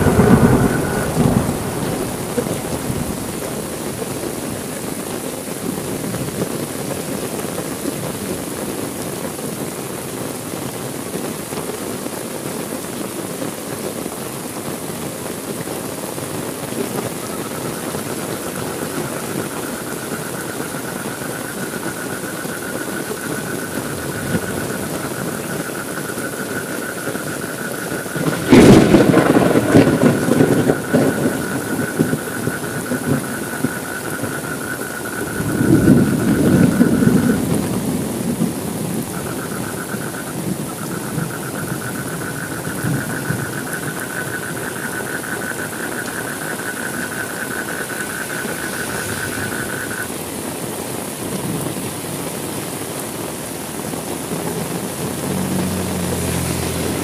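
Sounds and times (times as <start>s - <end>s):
thunder crack and rumble: 0.0s - 6.8s, 22.9s - 50.2s
steady rainfall: 0.0s - 57.0s.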